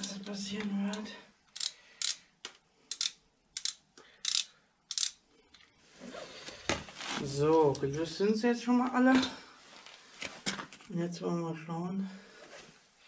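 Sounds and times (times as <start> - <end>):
hand wrench clicking: 0.9 - 5.6.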